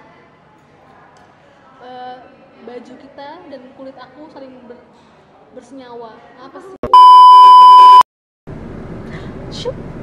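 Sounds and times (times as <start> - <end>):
test-tone beep: 6.9 - 8.0.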